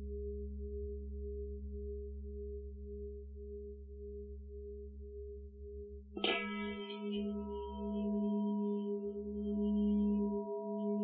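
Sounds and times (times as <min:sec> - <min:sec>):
singing bowl deep hum: 0:00.0 - 0:11.0.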